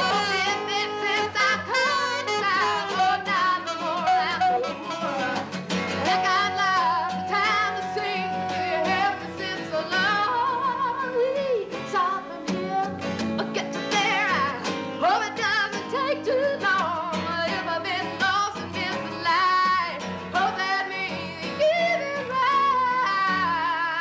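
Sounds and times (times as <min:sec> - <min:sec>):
strummed acoustic guitar: 0:00.0 - 0:24.0
woman singing with vibrato: 0:00.0 - 0:24.0.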